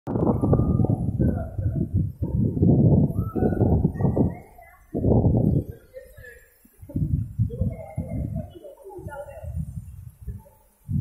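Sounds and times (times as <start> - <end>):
faint voices: 0.1 - 11.0.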